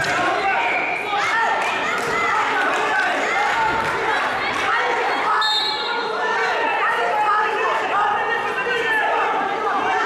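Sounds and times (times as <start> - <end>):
people shouting in a hall: 0.0 - 10.0.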